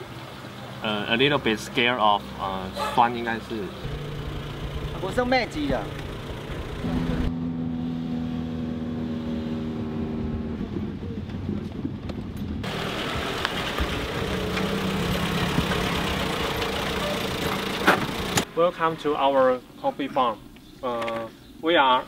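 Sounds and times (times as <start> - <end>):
truck engine running: 3.8 - 7.4, 12.5 - 18.5.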